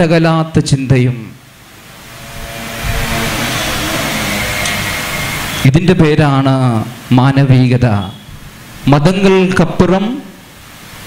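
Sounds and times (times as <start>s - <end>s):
steady rushing noise: 1.4s - 7.2s.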